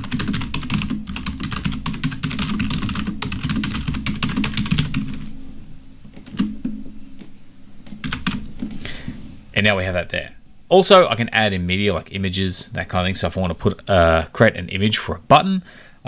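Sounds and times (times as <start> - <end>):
fast typing on keyboard: 0.0 - 5.2, 6.2 - 6.5, 7.9 - 8.8.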